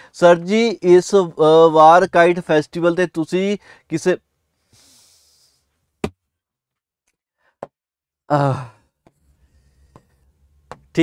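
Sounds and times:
man sighing exhale: 8.3s - 8.9s.

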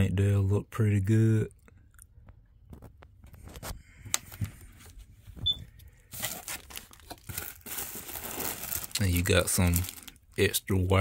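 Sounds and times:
plastic packaging crinkling: 5.9s - 11.0s.

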